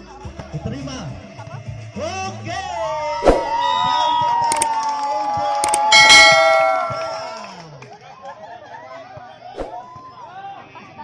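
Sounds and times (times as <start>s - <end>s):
mouse clicks: 5.6s - 6.9s
notification bell ding: 5.7s - 7.4s.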